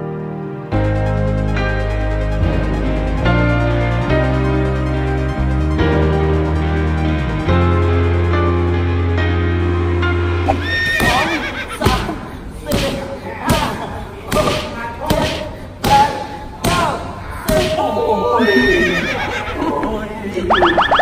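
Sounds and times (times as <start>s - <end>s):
voices crying out: 10.6s - 12.1s, 17.2s - 21.0s
strikes smacking pads: 12.7s - 17.8s
people laughing: 18.1s - 21.0s.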